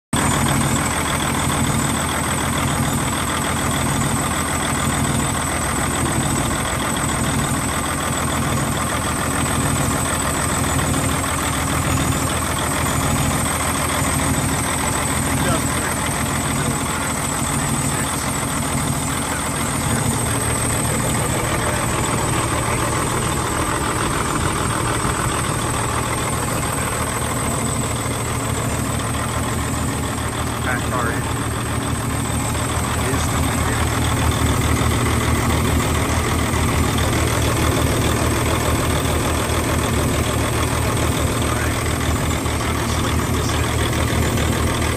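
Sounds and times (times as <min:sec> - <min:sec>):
diesel truck engine idling: 0:00.1 - 0:44.9.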